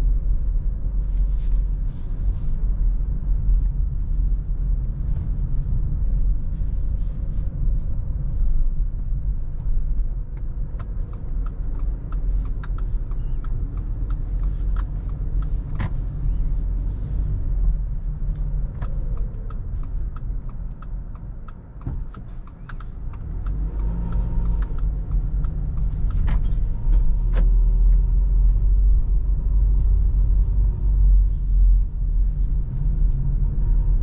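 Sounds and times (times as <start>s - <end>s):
car rumble from inside cabin: 0.0s - 34.0s.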